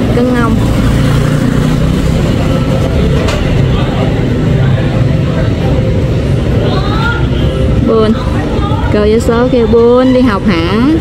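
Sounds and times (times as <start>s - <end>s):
motorbike engine rumble: 0.0s - 8.9s.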